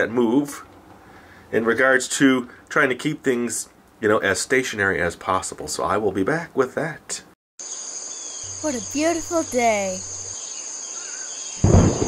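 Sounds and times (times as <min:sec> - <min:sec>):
crickets chirping: 0:07.6 - 0:12.0
loud thunder clap: 0:11.6 - 0:12.0.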